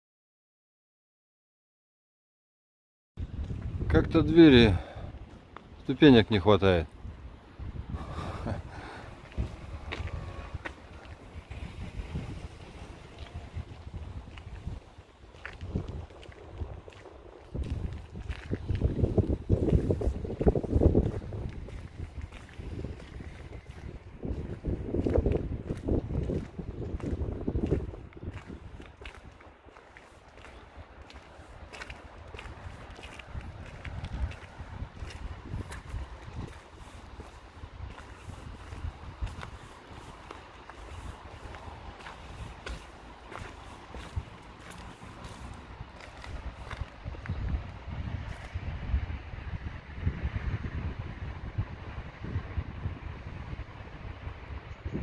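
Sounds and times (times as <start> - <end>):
footsteps on cobblestones: 3.2 - 3.8, 5.2 - 6.0, 8.0 - 48.6
wind buffeting microphone: 3.2 - 55.0.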